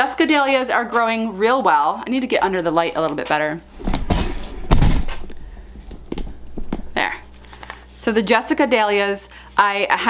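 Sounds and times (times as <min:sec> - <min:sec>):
rustling handling noise: 0:02.9 - 0:08.0
dull thump: 0:03.7 - 0:07.3.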